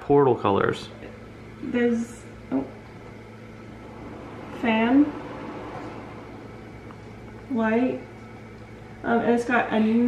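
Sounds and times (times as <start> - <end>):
exhaust fan whirring: 0.0 - 10.0.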